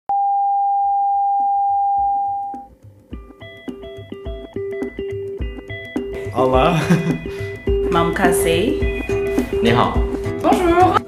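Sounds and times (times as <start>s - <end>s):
upbeat music with bell-like notes: 2.6s - 11.0s.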